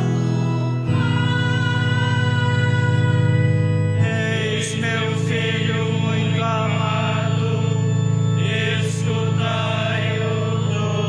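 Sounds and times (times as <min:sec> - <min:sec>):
person singing a chant: 0:00.0 - 0:11.0.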